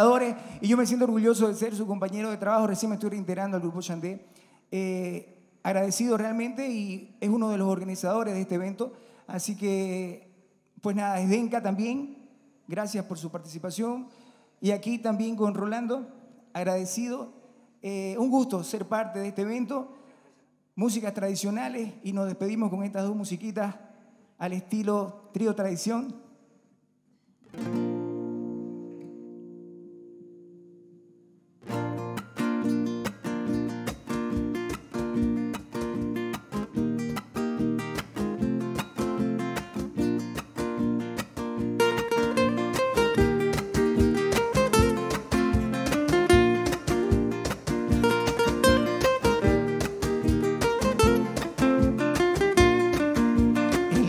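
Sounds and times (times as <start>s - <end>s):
acoustic guitars strumming: 27.4s - 31.0s, 31.6s - 54.0s.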